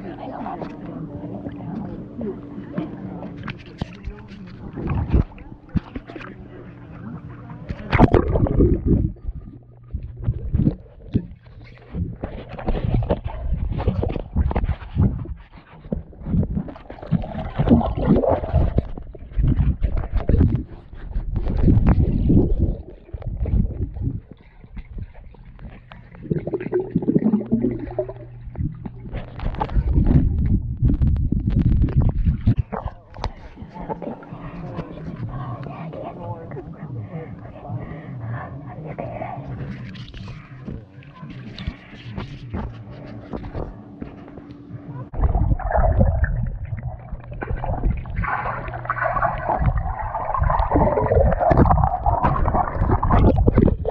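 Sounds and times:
muffled water sloshing and gurgling: 0.0 - 53.9
camera knocks underwater: 7.7 - 25.9, 28.1 - 33.5, 45.1 - 53.9.

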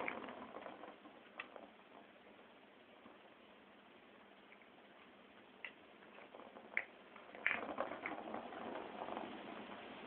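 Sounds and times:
plastic balls clicking in toy: 5.6 - 9.6.

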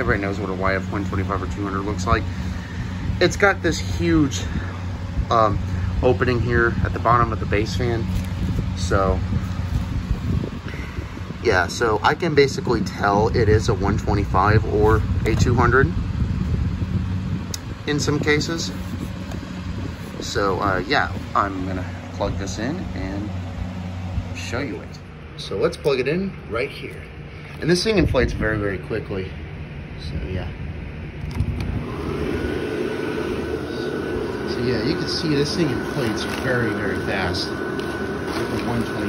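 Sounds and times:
blower fan whirring: 0.0 - 39.0
low machine hum: 0.0 - 39.0.

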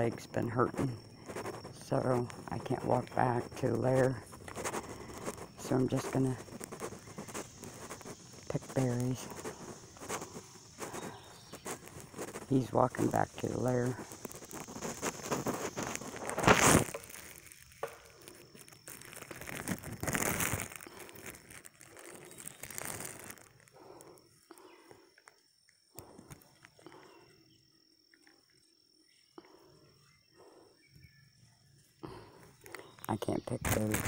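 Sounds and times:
leaves and brush rustling: 0.0 - 25.3, 31.6 - 34.0.

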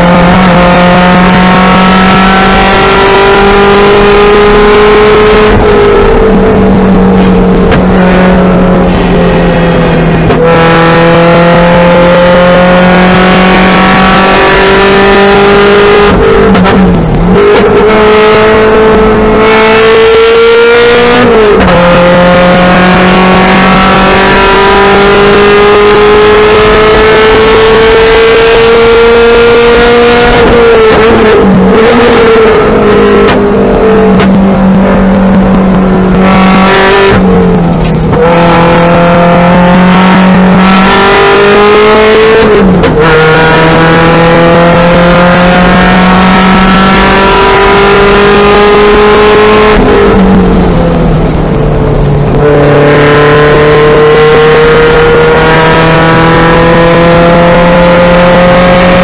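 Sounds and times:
race car engine revving: 0.0 - 59.0.

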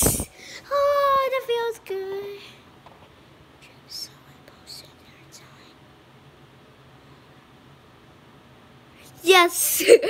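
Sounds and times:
faint room noise: 0.0 - 10.0
soft whispering: 3.6 - 5.9.

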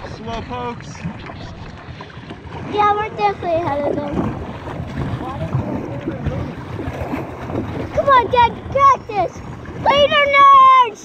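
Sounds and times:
wind buffeting microphone: 0.0 - 10.9
paddle strokes splashing: 0.0 - 11.0
water washing against kayak: 0.0 - 11.0.

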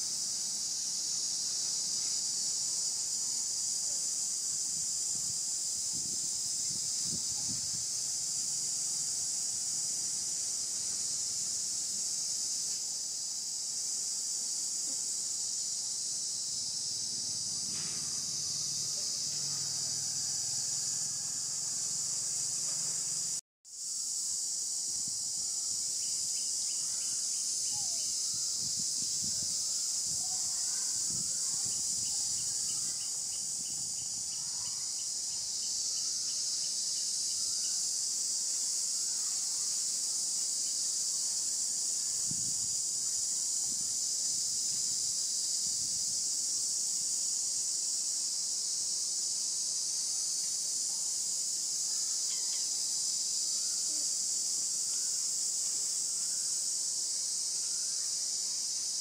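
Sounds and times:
high-pitched insect chorus: 0.0 - 59.0.

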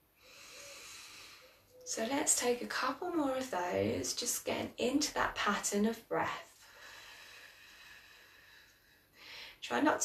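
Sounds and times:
woman breathing slowly: 0.0 - 1.8, 6.5 - 9.6.

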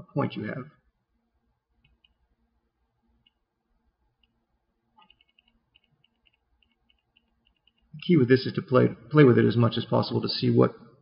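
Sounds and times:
computer mouse clicks: 1.8 - 2.2, 5.0 - 8.0.

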